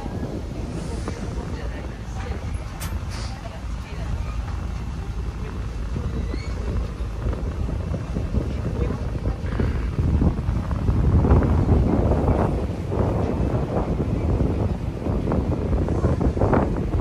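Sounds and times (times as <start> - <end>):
people talking faintly: 0.0 - 10.2
steady low rumble: 0.0 - 17.0
wind buffeting microphone: 0.0 - 17.0.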